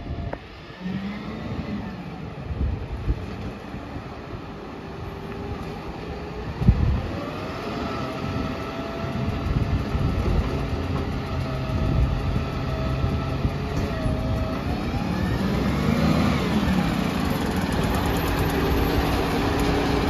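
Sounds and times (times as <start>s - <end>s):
diesel truck engine rumbling: 0.0s - 20.0s.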